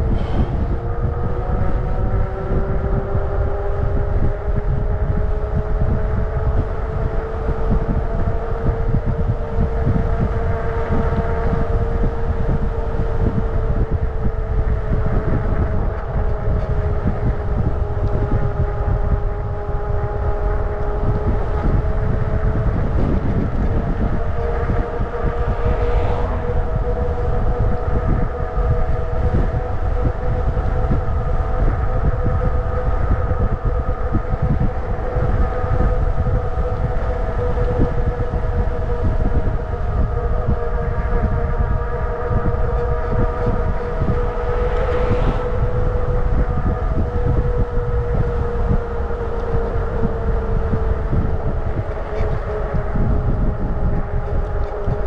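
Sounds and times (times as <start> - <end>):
wind rumble on microphone: 0.0 - 55.0.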